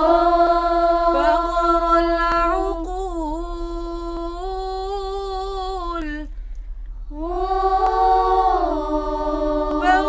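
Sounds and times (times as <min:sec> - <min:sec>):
girls singing a cappella: 0:00.0 - 0:06.4, 0:07.0 - 0:10.0.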